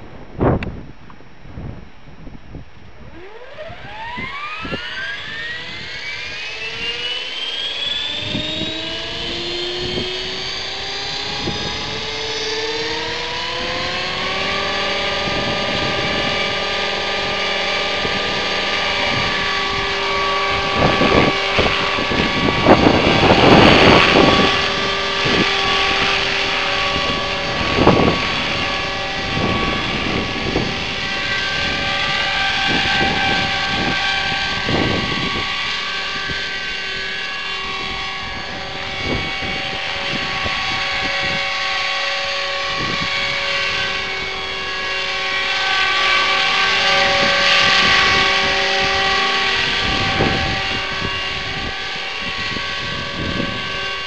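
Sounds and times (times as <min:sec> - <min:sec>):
rc helicopter rotor whine: 0:00.0 - 0:54.0
wind buffeting microphone: 0:00.0 - 0:54.0.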